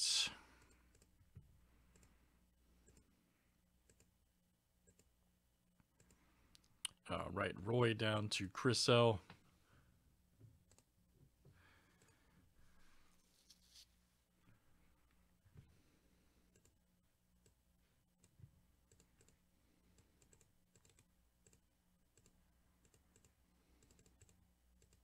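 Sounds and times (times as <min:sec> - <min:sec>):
computer mouse and keyboard clicks: 0:00.6 - 0:01.2, 0:03.8 - 0:04.1, 0:06.0 - 0:06.7, 0:18.2 - 0:21.6, 0:22.2 - 0:25.0.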